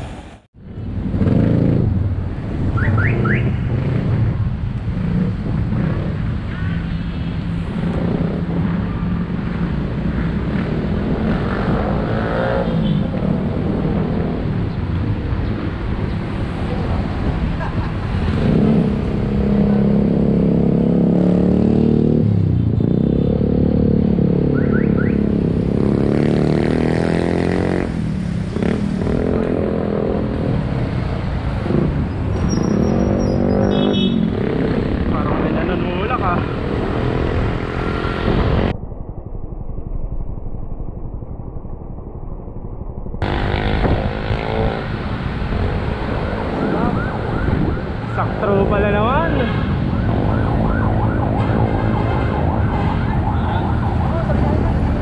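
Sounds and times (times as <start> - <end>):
vehicle engines passing: 0.0 - 38.8, 43.2 - 55.0.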